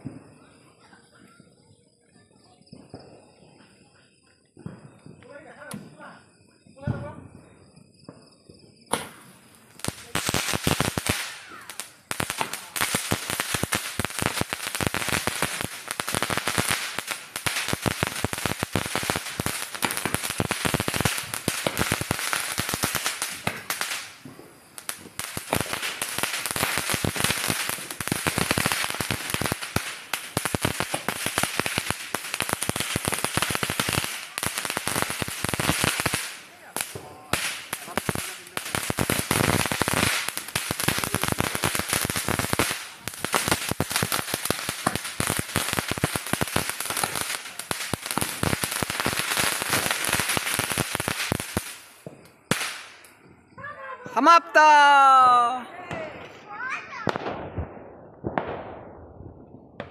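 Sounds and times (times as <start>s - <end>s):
firework fountain crackling: 0.0s - 59.9s.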